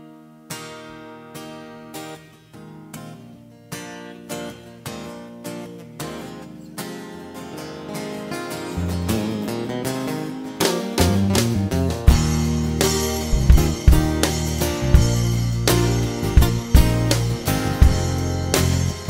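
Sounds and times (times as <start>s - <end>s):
acoustic guitars strumming chords: 0.0s - 19.0s.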